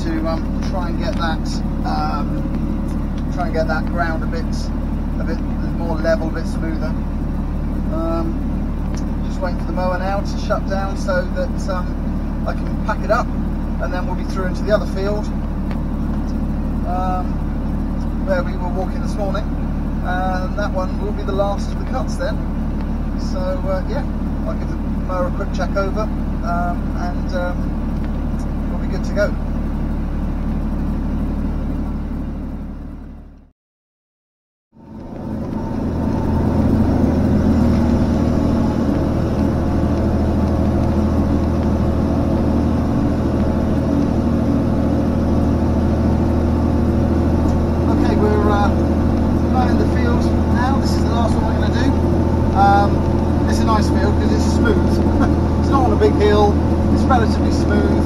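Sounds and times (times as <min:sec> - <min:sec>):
tractor engine running: 0:00.0 - 0:33.5, 0:34.7 - 0:58.0.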